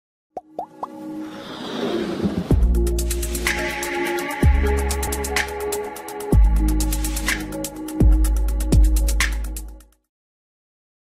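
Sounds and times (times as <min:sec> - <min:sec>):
quick pops gliding up in pitch: 0:00.4 - 0:01.0.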